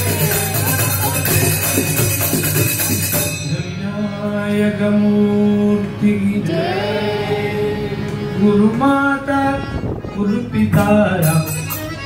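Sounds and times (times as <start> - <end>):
jingling hand percussion: 0.0 - 3.9, 10.7 - 12.0.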